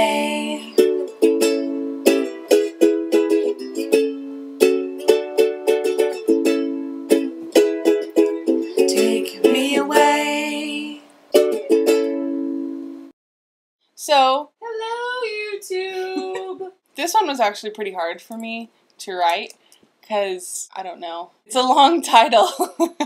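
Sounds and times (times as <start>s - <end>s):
ukulele strumming: 0.0s - 13.0s.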